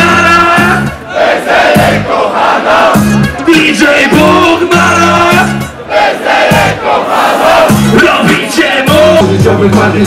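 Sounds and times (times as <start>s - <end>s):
hip-hop music through pa: 0.0s - 10.0s.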